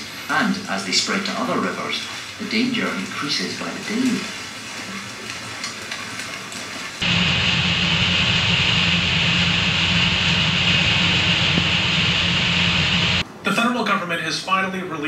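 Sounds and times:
faint splashing from television: 0.0 - 7.3
range hood fan rushing hiss: 7.0 - 13.2.

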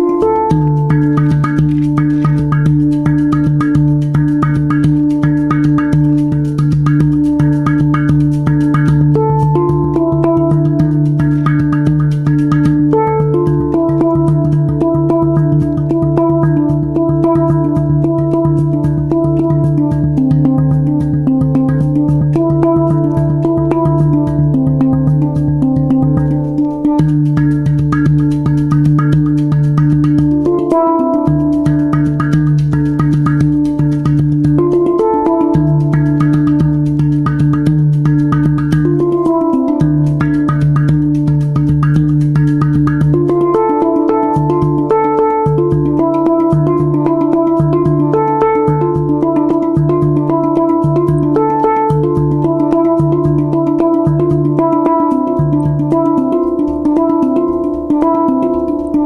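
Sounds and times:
handpan melody: 0.0 - 59.0.

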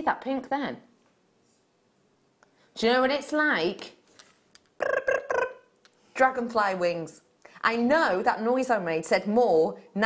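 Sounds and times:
woman making buzzing vocal noise: 4.8 - 5.7.

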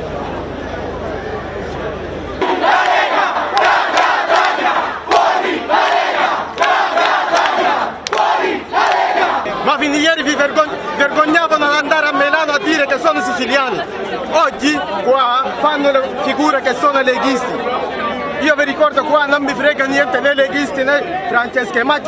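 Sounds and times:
crowd murmur: 0.0 - 22.0
crowd chanting in unison: 2.4 - 9.8.

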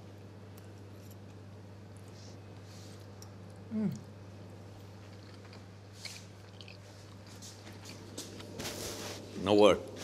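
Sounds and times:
steady low hum: 0.0 - 10.0
person chewing food: 0.6 - 8.4.

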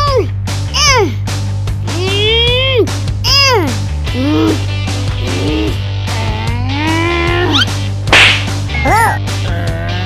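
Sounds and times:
background music with bass line: 0.0 - 10.0
sharp whip crack: 8.1 - 8.6.

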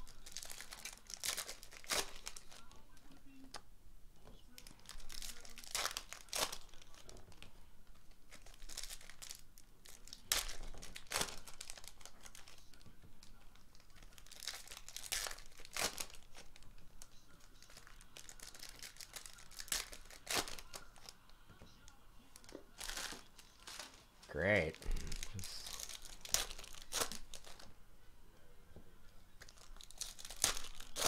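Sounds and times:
foil wrappers crinkling and tearing: 0.0 - 3.0, 4.5 - 7.5, 8.3 - 21.2, 22.3 - 27.7, 29.4 - 31.0
cards being handled: 24.8 - 27.7, 29.4 - 31.0.

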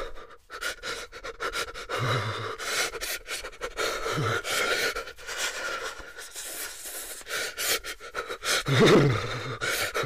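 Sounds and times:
shaky shivering breaths: 0.0 - 10.0.

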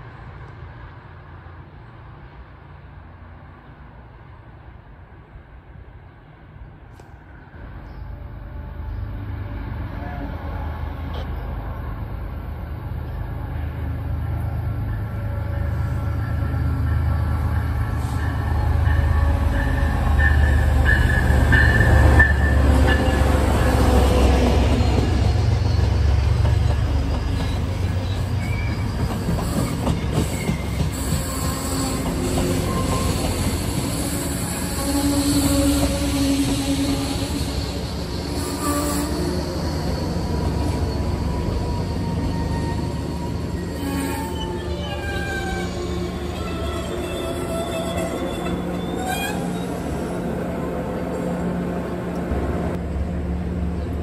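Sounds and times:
diesel locomotive rumbling: 0.0 - 54.0
train coaches rolling by: 0.0 - 54.0
high squealing tones: 32.5 - 50.2.

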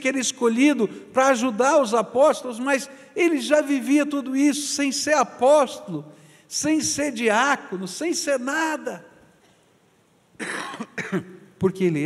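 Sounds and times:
man coughing: 10.4 - 11.4.

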